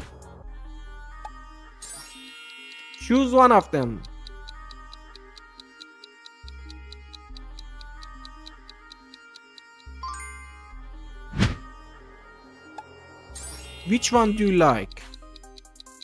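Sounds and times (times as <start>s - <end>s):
rapid clock-like ticking: 1.8s - 10.0s, 12.8s - 16.0s
loud whoosh: 11.3s - 11.6s.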